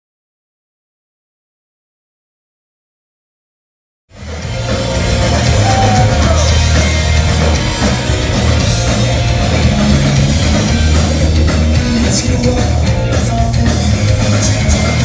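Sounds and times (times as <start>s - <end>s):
punk rock band playing live: 4.1s - 15.0s.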